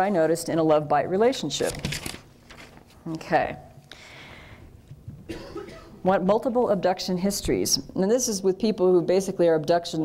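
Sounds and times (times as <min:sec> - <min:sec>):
woman coughing softly: 0:05.3 - 0:06.0.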